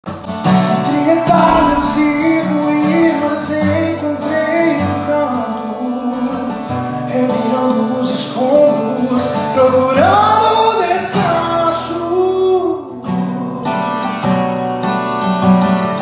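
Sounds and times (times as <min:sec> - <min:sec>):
acoustic guitar strumming: 0:00.1 - 0:16.0
man singing a ballad: 0:00.8 - 0:13.5.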